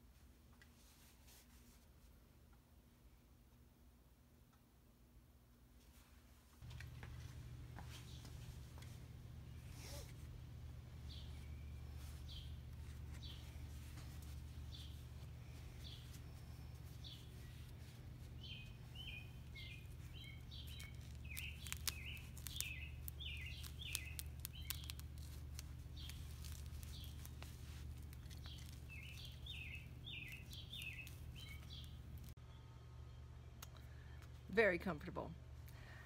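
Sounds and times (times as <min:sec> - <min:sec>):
steady low hum: 0:02.2 - 0:34.7
birds chirping: 0:09.0 - 0:34.0.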